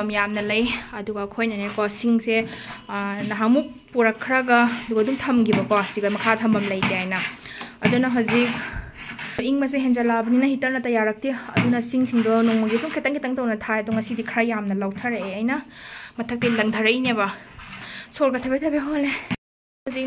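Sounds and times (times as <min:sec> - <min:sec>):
woman talking: 0:00.0 - 0:17.5, 0:18.1 - 0:20.0.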